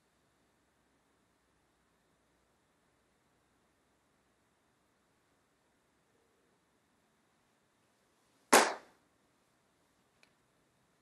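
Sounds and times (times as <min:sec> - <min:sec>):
sharp crack: 0:08.5 - 0:09.0.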